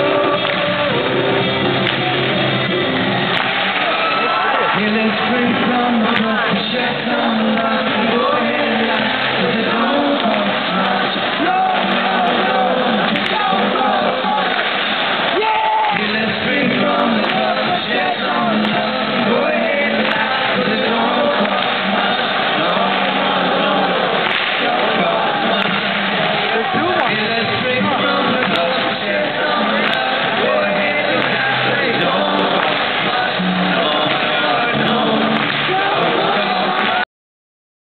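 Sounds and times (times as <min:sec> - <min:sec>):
audience noise: 0:00.0 - 0:37.0
band playing acoustic guitars: 0:00.0 - 0:37.0
people singing: 0:00.0 - 0:37.0.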